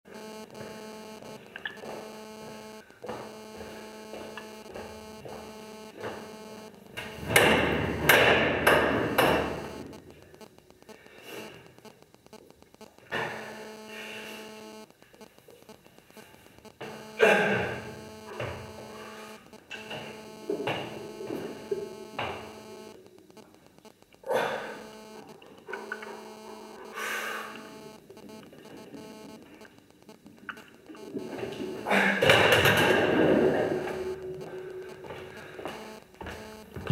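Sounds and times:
electrical hum: 0:00.0 - 0:36.9.

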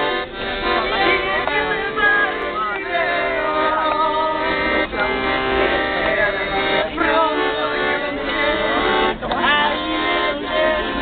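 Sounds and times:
accordion playing chords: 0:00.0 - 0:11.0
women singing: 0:00.6 - 0:11.0.

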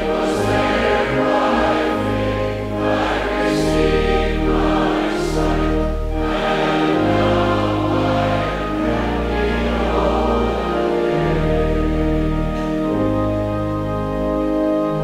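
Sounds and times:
congregation singing a hymn: 0:00.0 - 0:15.0
sustained instrumental accompaniment: 0:00.0 - 0:15.0.

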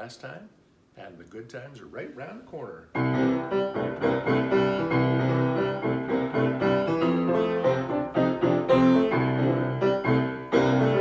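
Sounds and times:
piano playing: 0:02.9 - 0:11.0.

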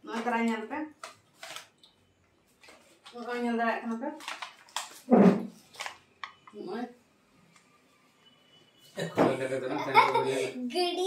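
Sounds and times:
plastic packaging crinkling: 0:00.1 - 0:06.5.

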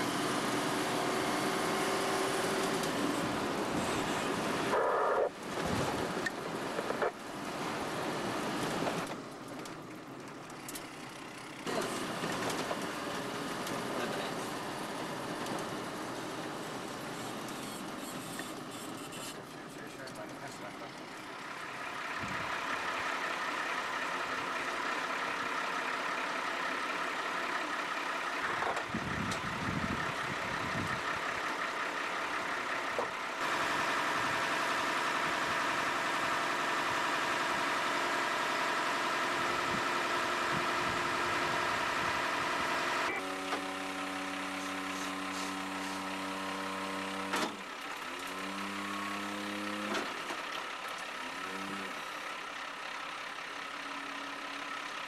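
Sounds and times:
truck engine running and revving: 0:00.0 - 0:55.0.

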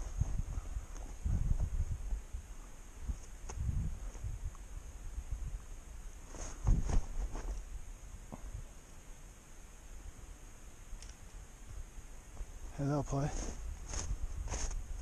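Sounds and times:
footsteps in snow: 0:00.0 - 0:02.2, 0:06.2 - 0:07.7, 0:12.3 - 0:15.0
microphone handling rustle: 0:00.0 - 0:02.2, 0:03.0 - 0:04.6, 0:06.2 - 0:07.7, 0:12.3 - 0:15.0.

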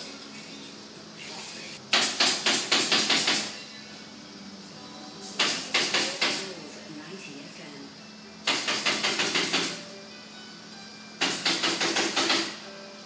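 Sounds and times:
steady low hum: 0:03.4 - 0:11.2.

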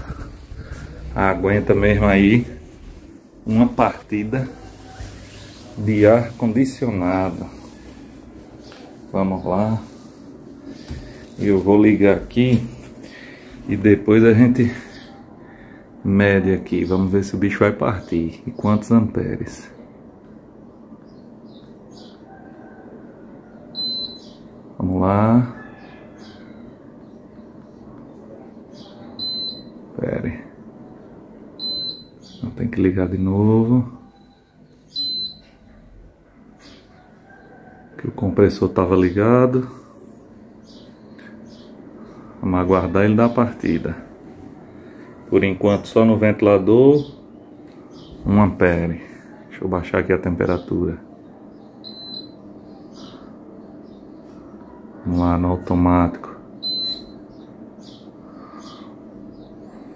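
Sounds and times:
air conditioner low hum: 0:00.0 - 0:59.9
air conditioner short high beep: 0:23.8 - 0:24.3, 0:29.2 - 0:29.8, 0:31.6 - 0:32.2, 0:34.1 - 0:35.6, 0:51.8 - 0:52.4, 0:56.6 - 0:57.2.

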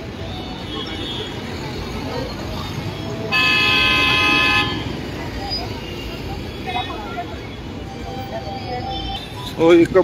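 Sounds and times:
crowd noise: 0:00.0 - 0:10.0
street traffic: 0:00.0 - 0:10.0
car horn: 0:03.3 - 0:05.0.

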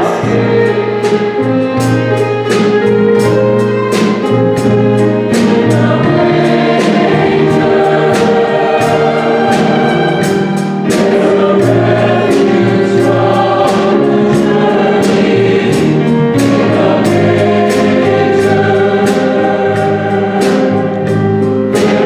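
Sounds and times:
church choir singing: 0:00.0 - 0:22.0
drum kit and cymbal hits: 0:00.0 - 0:22.0
piano: 0:00.0 - 0:22.0.

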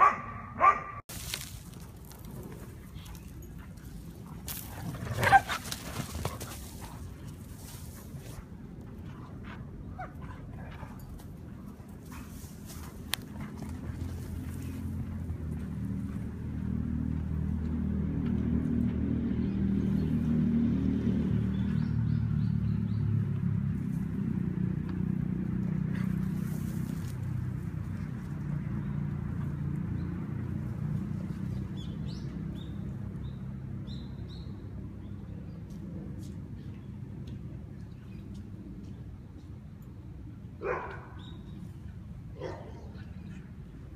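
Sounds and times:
low engine hum passing by: 0:00.0 - 0:43.9.

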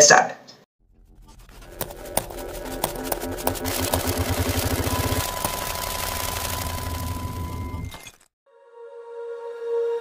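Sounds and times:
vehicle engine throbbing: 0:00.8 - 0:08.3.

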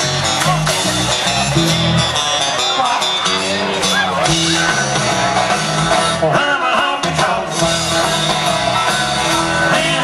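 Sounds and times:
country band playing through pa: 0:00.0 - 0:10.0.

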